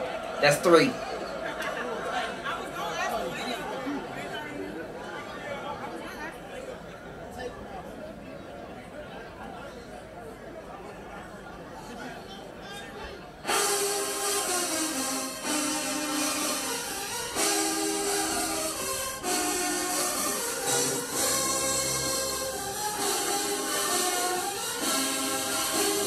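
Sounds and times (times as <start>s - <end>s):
crowd murmur: 0.0s - 26.0s
marching band brass chords: 13.4s - 26.0s
low tuba notes: 13.5s - 26.0s.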